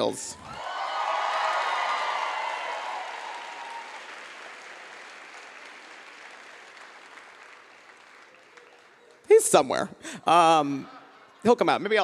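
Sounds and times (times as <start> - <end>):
audience applauding: 0.4 - 9.3.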